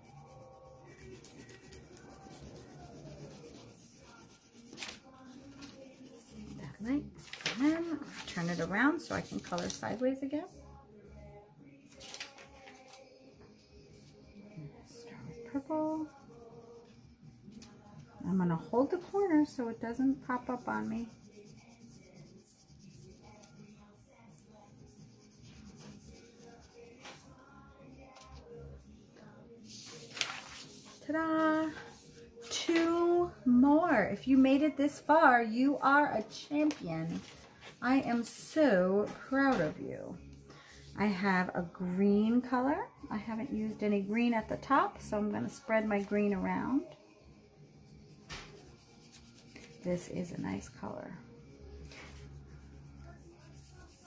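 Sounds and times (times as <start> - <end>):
crayon scratching on paper: 0.0 - 6.9, 18.8 - 23.9, 24.5 - 27.2, 47.6 - 54.0.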